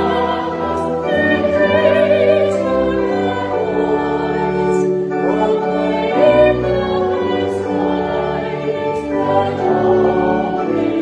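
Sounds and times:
choir singing held notes: 0:00.0 - 0:11.0.

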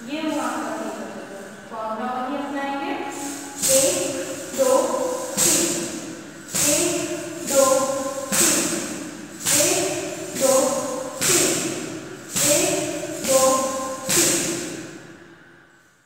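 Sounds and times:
foot stamps: 0:03.3 - 0:14.9.

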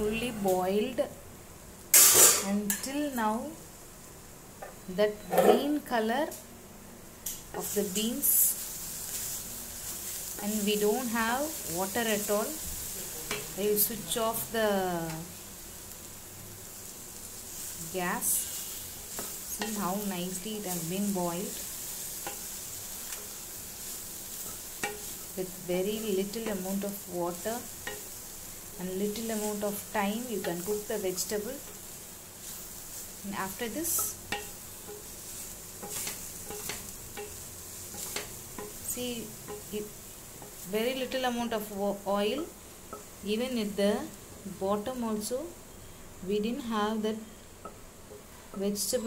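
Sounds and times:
beans sizzling in a pan: 0:00.0 - 0:49.0.

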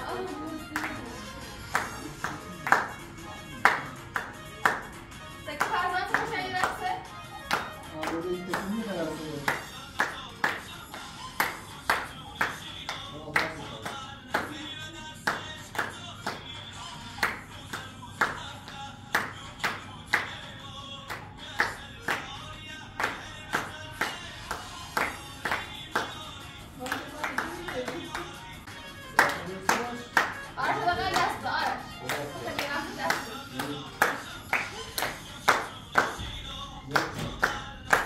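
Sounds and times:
music: 0:00.0 - 0:38.0
people clapping in rhythm: 0:00.0 - 0:38.0.

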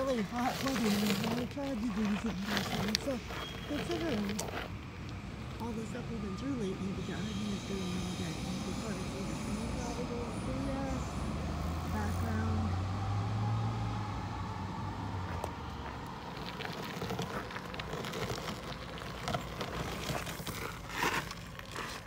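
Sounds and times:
footsteps on gravel: 0:00.0 - 0:05.8, 0:15.3 - 0:22.0
vehicle engine hum: 0:00.0 - 0:22.0.

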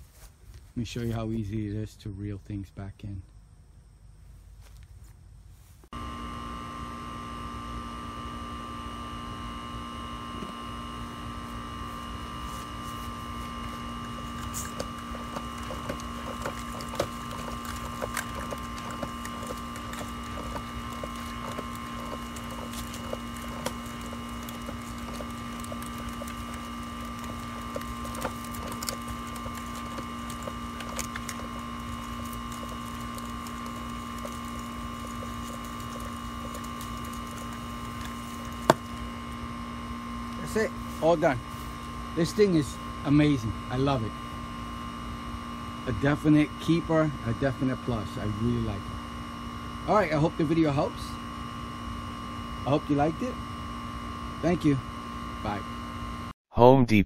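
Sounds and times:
steady hum: 0:03.2 - 0:57.0
hose reel cranking: 0:13.6 - 0:39.0.

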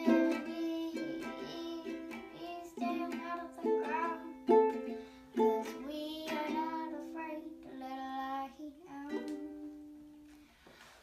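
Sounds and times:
ukulele strumming chords: 0:00.0 - 0:08.0, 0:08.9 - 0:10.2
girl singing: 0:00.0 - 0:10.2.

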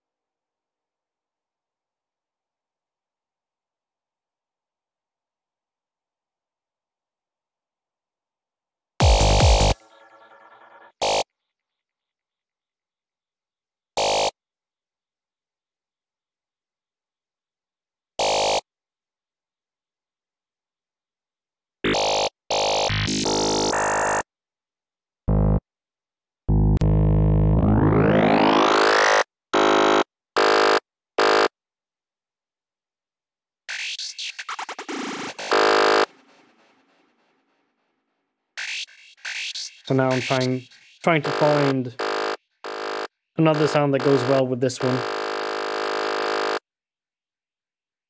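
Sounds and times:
synth lead riff: 0:09.0 - 0:11.2, 0:26.5 - 0:29.2, 0:41.1 - 0:46.6.

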